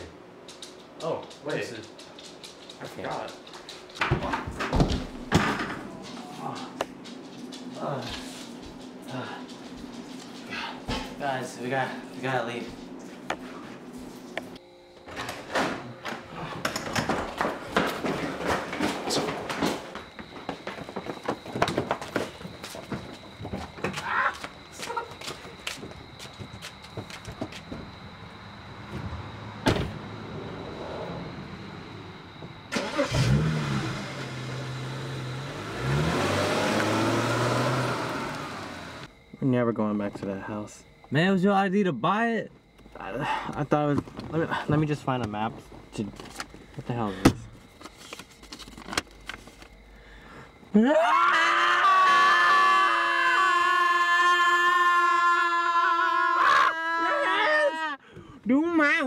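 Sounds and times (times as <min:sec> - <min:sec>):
car engine revving: 0:29.4 - 0:39.1
car engine starting and idling: 0:29.4 - 0:39.1
car doors slamming: 0:29.6 - 0:30.0
long loud scream: 0:50.7 - 0:58.0.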